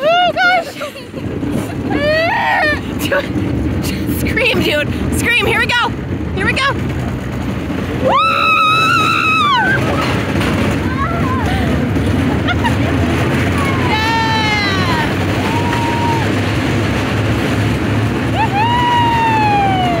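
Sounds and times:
wind and ride noise: 0:00.0 - 0:20.0
riders screaming: 0:08.0 - 0:11.8, 0:13.5 - 0:16.6, 0:18.2 - 0:20.0.

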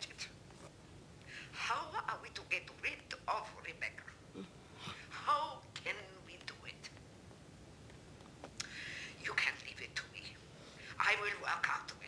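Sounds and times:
breath sounds: 0:08.6 - 0:09.2.

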